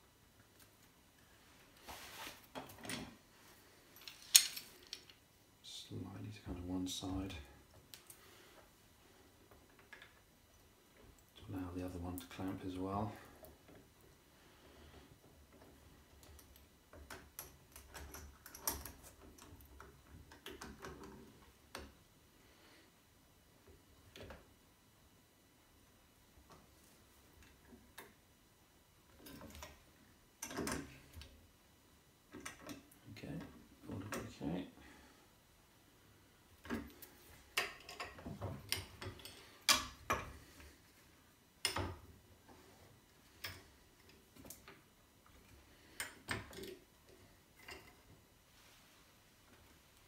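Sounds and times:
metal clamps clicking and clanking: 4.0 - 5.1.

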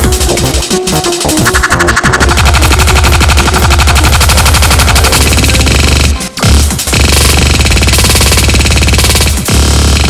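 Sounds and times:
rapid drum machine roll: 0.0 - 10.0.

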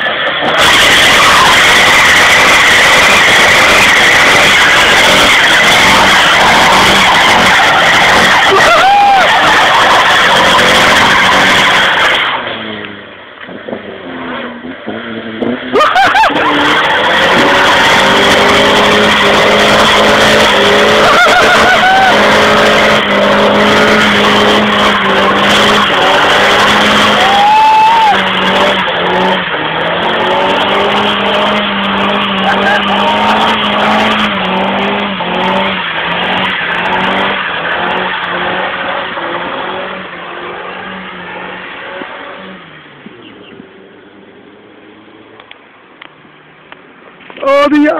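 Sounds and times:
car engine at high revs: 0.0 - 47.9
tyres squealing: 0.4 - 12.4.

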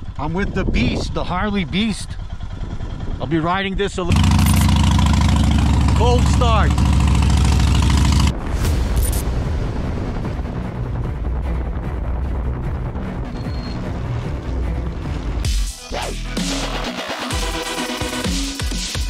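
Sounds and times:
motorcycle engine idling: 1.2 - 8.3
electronic music with logo sting: 15.4 - 19.0.

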